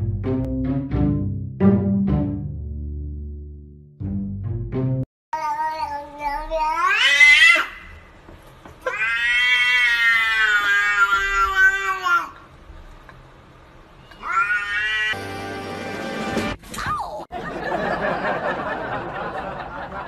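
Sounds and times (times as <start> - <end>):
cats yowling: 6.6 - 7.9, 8.8 - 12.4, 14.1 - 15.2.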